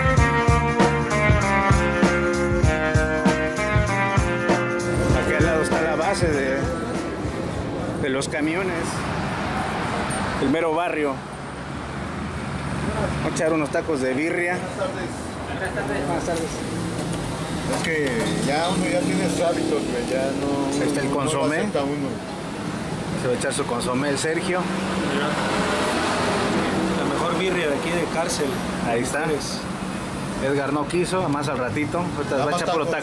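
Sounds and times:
road traffic noise: 0.0s - 33.0s.

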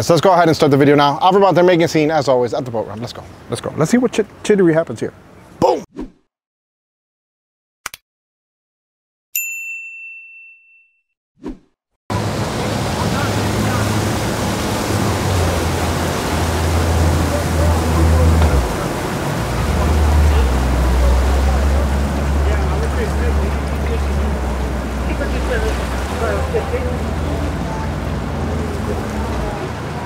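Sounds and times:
bell-like ding: 9.4s - 11.1s
outboard engines humming: 12.1s - 30.0s
water noise: 12.1s - 30.0s.

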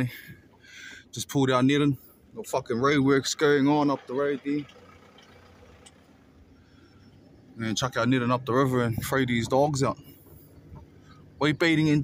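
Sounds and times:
low vehicle rumble: 0.0s - 12.0s.

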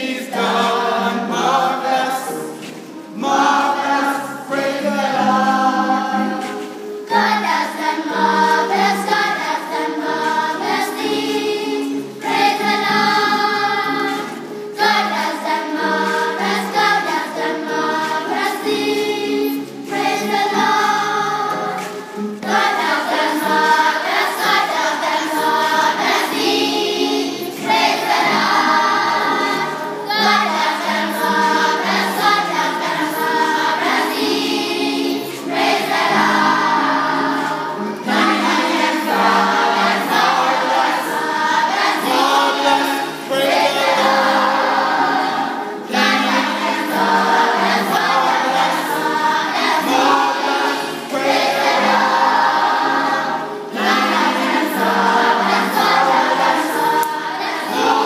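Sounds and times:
children's choir singing: 0.0s - 58.0s.

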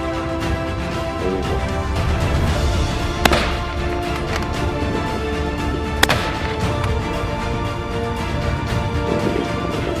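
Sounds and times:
background music: 0.0s - 10.0s
gunshot: 3.2s - 3.7s, 6.0s - 6.5s.

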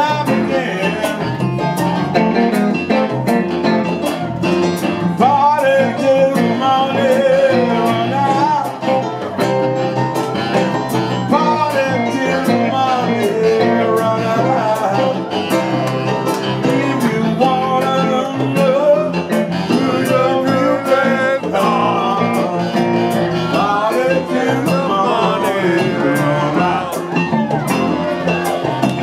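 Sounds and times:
congas: 0.0s - 29.0s
electric guitar bending notes: 0.0s - 29.0s
live band playing country blues: 0.0s - 29.0s.

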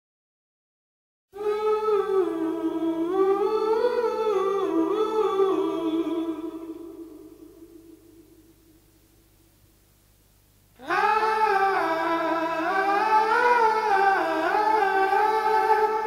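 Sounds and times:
hummed vocal melody: 1.4s - 8.8s, 10.8s - 16.0s.

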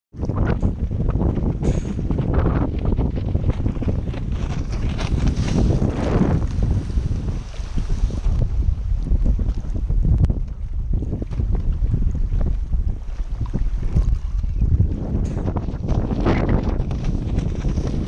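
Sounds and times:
choppy water slapping: 0.1s - 18.0s
wind buffeting microphone: 0.1s - 18.0s
windsurf board rushing past: 0.2s - 18.0s.

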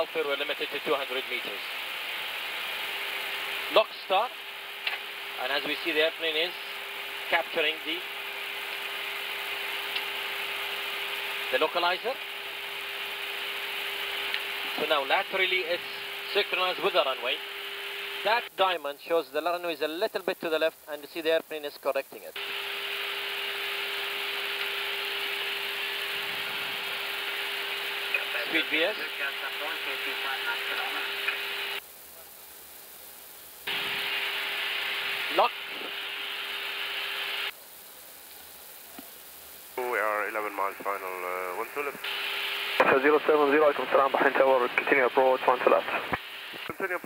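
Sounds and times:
aircraft cockpit hiss and hum: 0.0s - 18.6s, 22.0s - 32.3s, 33.0s - 37.6s, 39.0s - 47.0s.

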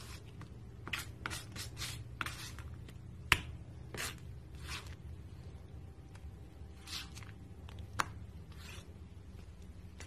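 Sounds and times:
palette knife scraping paint: 0.0s - 2.8s, 3.9s - 5.1s, 6.7s - 7.8s, 8.4s - 9.0s.

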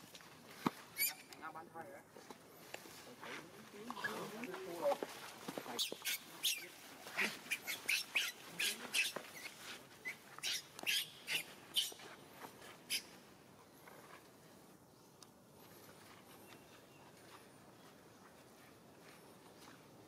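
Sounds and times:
baby monkey crying and shrieking: 0.9s - 1.3s, 5.8s - 12.0s, 12.9s - 13.1s.

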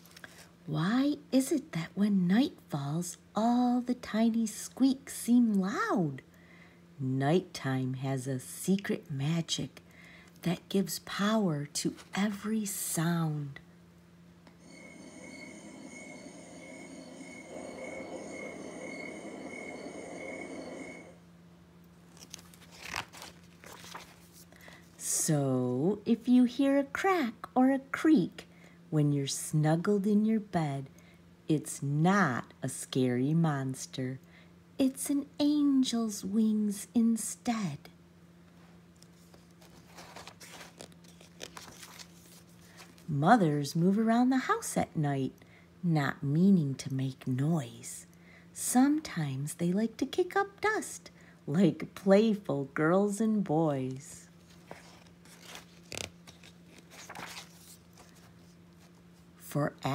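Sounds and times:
crickets chirping: 14.6s - 21.2s
paper page turning: 22.1s - 24.5s, 39.0s - 43.1s, 54.4s - 59.0s.

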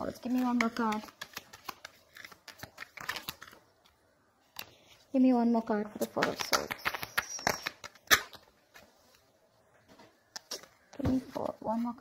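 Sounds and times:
cards being shuffled: 0.0s - 3.9s, 6.0s - 9.2s.

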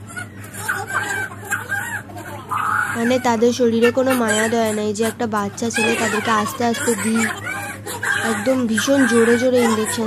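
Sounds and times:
infant whimpering: 5.8s - 10.0s.

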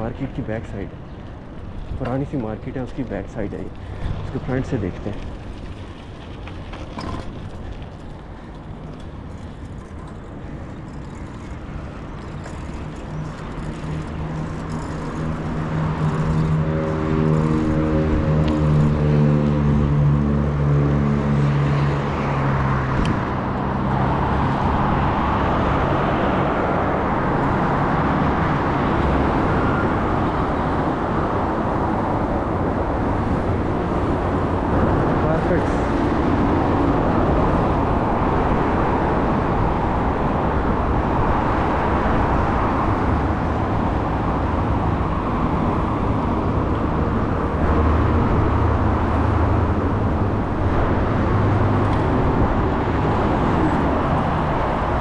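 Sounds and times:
bicycle tyre noise on pavement: 0.5s - 55.0s.

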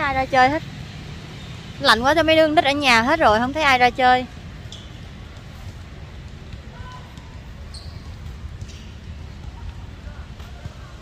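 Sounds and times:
distant basketballs bouncing: 0.1s - 11.0s.

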